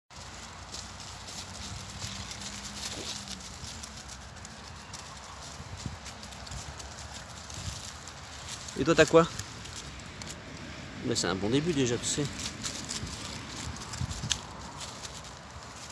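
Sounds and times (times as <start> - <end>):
dog paws on dry leaves: 0.1 - 15.9
outdoor background noise: 0.1 - 15.9.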